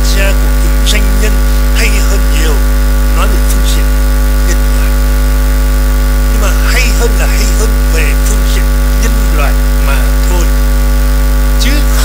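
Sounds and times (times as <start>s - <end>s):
faint speech: 0.0s - 2.6s
electrical mains hum: 0.0s - 12.0s.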